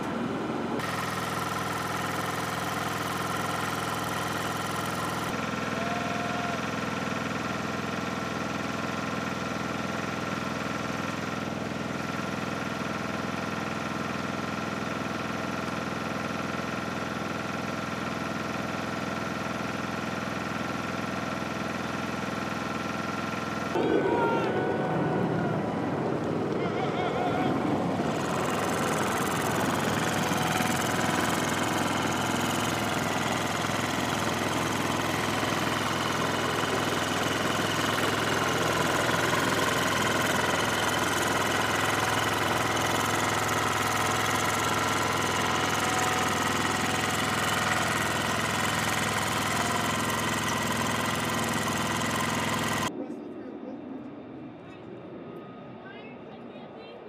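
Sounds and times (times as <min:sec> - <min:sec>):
engine and machinery noise: 0:00.0 - 0:57.0
voices: 0:23.8 - 0:33.5, 0:52.9 - 0:57.0
steady tonal whine: 0:23.8 - 0:34.1.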